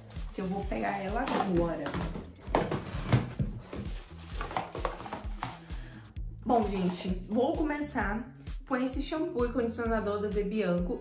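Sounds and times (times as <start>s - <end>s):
bottles and packaging handled: 0.0s - 7.5s
quiet background music: 0.0s - 11.0s.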